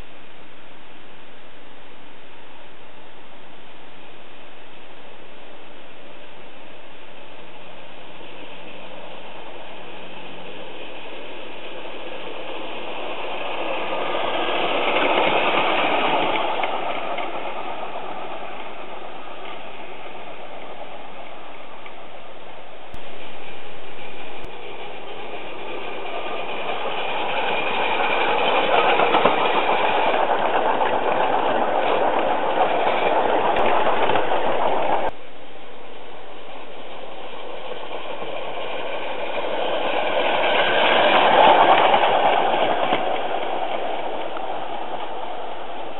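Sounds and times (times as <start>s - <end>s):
steam locomotive passing: 1.4s - 45.9s.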